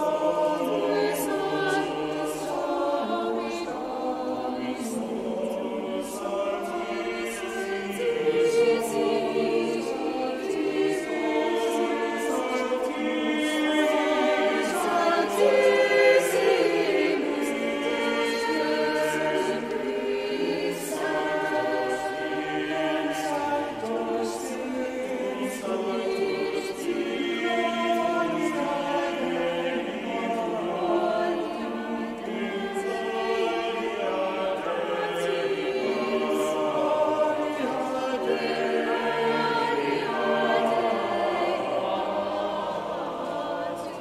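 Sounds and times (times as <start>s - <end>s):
choir singing in harmony: 0.0s - 44.0s.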